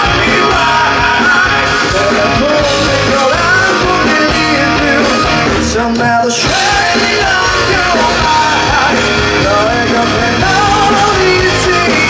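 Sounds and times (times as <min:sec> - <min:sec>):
bass guitar: 0:00.0 - 0:12.0
drum kit: 0:00.0 - 0:12.0
electric guitars: 0:00.0 - 0:12.0
man singing: 0:00.0 - 0:12.0.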